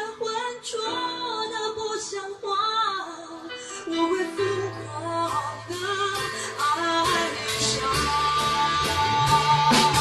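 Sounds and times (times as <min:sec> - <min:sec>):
woman singing pop ballad: 0:00.0 - 0:10.0
instrumental accompaniment: 0:03.5 - 0:10.0.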